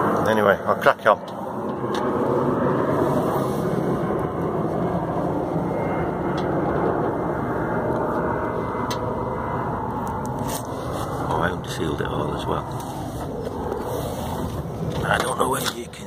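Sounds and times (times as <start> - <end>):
continuous rushing roar: 0.0 - 16.0.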